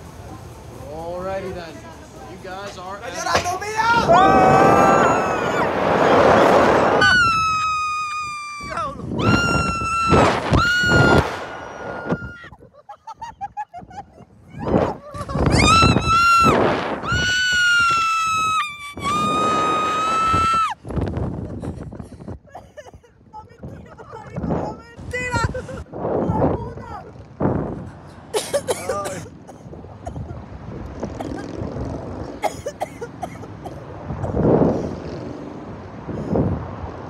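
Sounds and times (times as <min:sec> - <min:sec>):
rush of noise at launch: 0:03.9 - 0:12.4
riders screaming: 0:03.9 - 0:12.6, 0:15.5 - 0:20.8.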